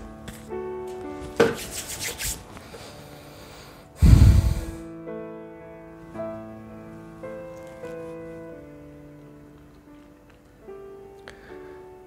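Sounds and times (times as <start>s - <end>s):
soft background music: 0.0s - 12.0s
hands brushing and rubbing: 1.1s - 2.8s.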